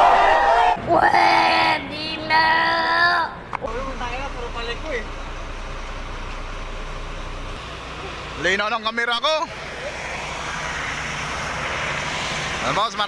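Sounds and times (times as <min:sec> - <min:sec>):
truck engine rumbling: 0:03.6 - 0:13.0.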